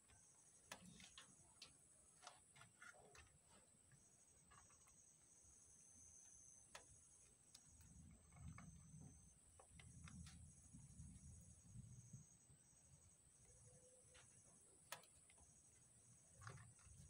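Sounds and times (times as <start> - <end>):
faint high whine: 0.0 - 17.0
rabbits nibbling and shifting: 0.0 - 17.0.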